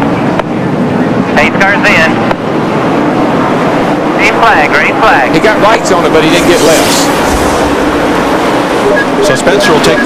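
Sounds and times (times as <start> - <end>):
race car engines in a pack: 0.0 - 10.0.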